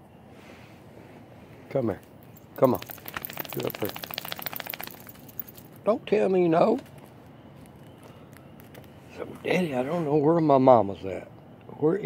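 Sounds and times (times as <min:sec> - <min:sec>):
dog claws scrabbling on floor: 0:02.6 - 0:05.7.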